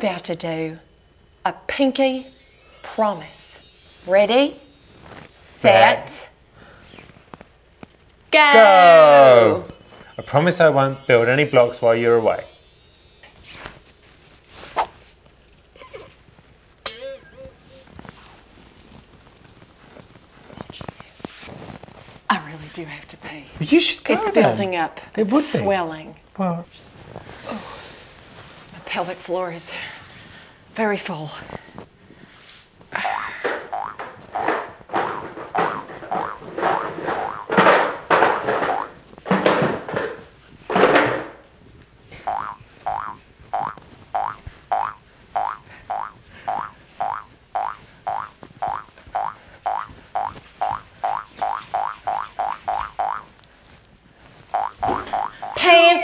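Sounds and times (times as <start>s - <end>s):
light music: 0.0s - 6.2s, 9.7s - 14.6s
soft shuffling movement: 28.0s - 30.4s
cartoon boing effects: 33.0s - 37.5s, 38.6s - 39.0s, 42.3s - 53.2s, 54.6s - 55.6s.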